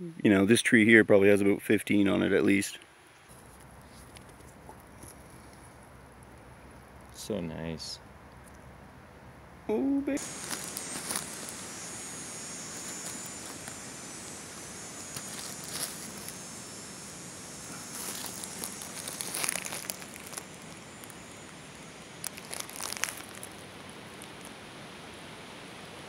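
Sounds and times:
leaves and twigs rustling: 3.1s - 7.2s, 10.2s - 25.4s
steady hiss: 10.2s - 26.0s.

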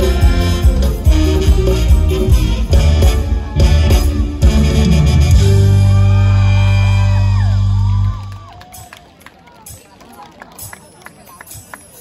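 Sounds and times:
band's held chord over speakers: 0.0s - 8.1s
audience murmuring: 0.0s - 12.0s
scattered claps and whoops: 6.2s - 12.0s.

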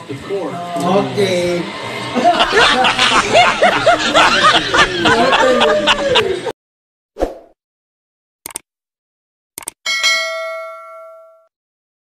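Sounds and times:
notification bell chime: 9.9s - 11.5s.

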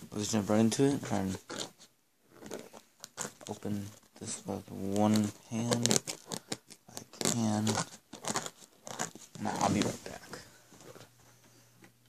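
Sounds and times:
tablet handling rustles: 2.4s - 11.4s.

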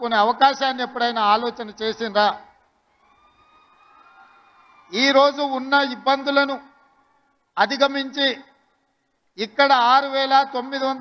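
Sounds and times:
man's amplified speech: 0.0s - 2.5s, 4.9s - 6.7s, 7.6s - 8.5s, 9.4s - 11.0s.

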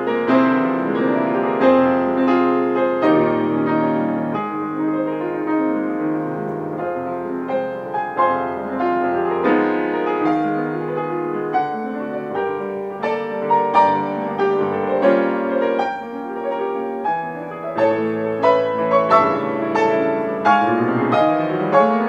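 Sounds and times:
grand piano classical piece: 0.0s - 22.0s.

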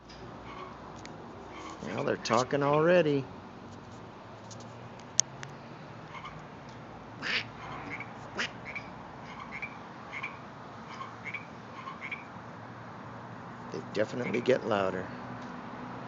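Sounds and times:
frogs croaking: 0.0s - 4.4s, 5.1s - 16.0s.

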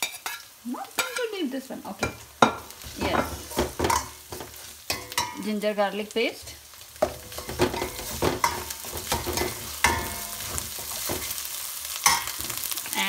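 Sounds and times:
spoon scraping a metal pan: 0.0s - 1.3s, 7.0s - 11.4s
onions sizzling in hot oil: 0.0s - 13.0s.

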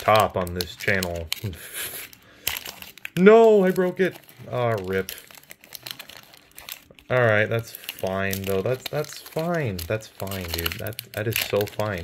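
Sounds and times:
foil wrapper crinkling: 0.0s - 12.0s.

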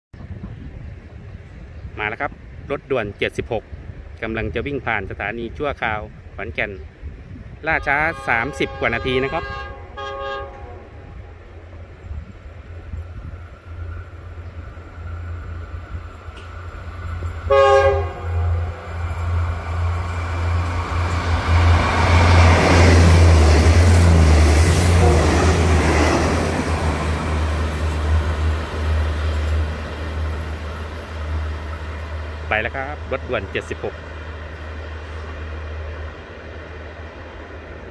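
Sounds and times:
train wheel and engine noise: 0.2s - 2.8s, 3.6s - 37.9s
train horn blast: 7.7s - 11.4s, 17.4s - 19.0s, 24.7s - 28.2s.

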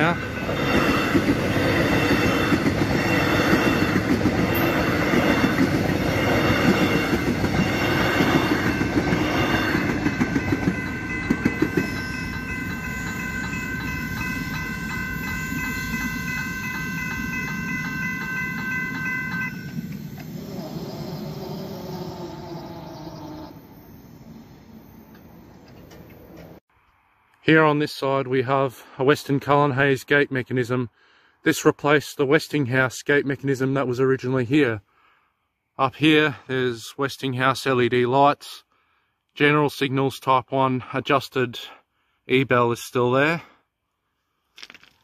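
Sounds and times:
level crossing electronic bells: 0.0s - 20.3s
train wheels over rails: 0.0s - 22.4s.

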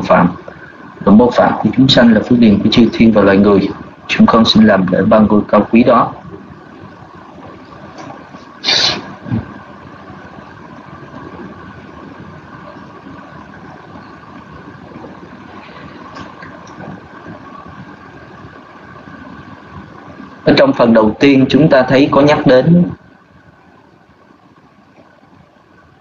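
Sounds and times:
microphone line hiss and hum: 0.0s - 26.0s
short noise burst: 8.6s - 9.6s.

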